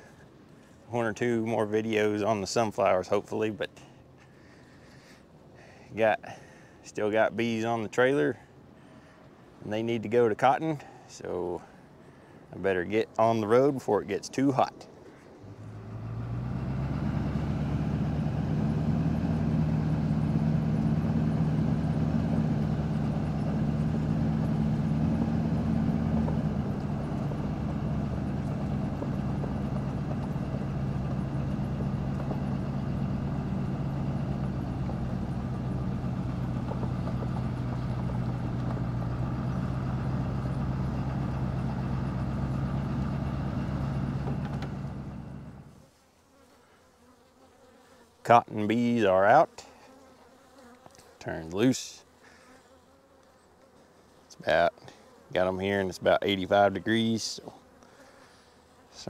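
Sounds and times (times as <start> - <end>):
truck engine running: 15.4 - 45.8.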